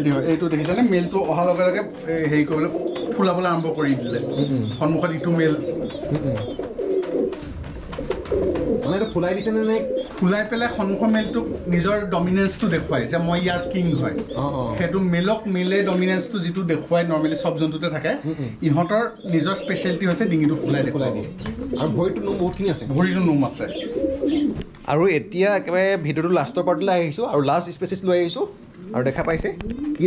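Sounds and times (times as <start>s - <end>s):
pigeons cooing: 0.0s - 30.0s.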